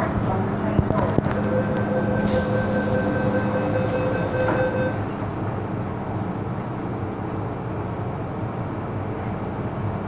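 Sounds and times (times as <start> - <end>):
steady warning tone: 1.2 - 5.2
train doors sliding shut: 2.1 - 5.3.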